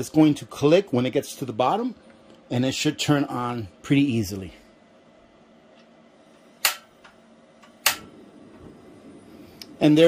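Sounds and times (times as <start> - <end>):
piezo igniter snaps: 6.6 - 8.2.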